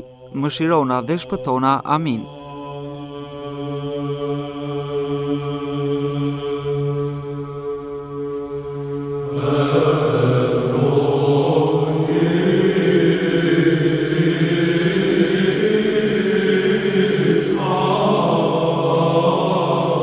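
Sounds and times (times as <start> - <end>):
voice holding long chant note: 0.0 - 20.0
group of voices chanting: 9.3 - 20.0.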